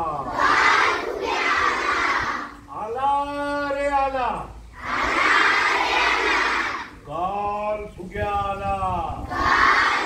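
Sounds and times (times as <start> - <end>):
children shouting in unison: 0.3 - 2.6, 4.8 - 7.0, 9.3 - 10.0.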